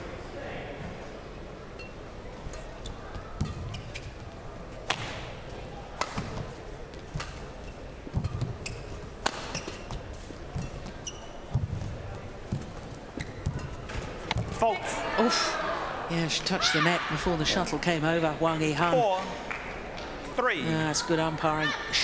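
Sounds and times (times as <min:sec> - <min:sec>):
shoes squeaking on court: 0:01.8 - 0:04.8, 0:06.2 - 0:14.6
rackets striking shuttlecock: 0:09.2 - 0:09.8
footwork thuds: 0:09.9 - 0:14.6.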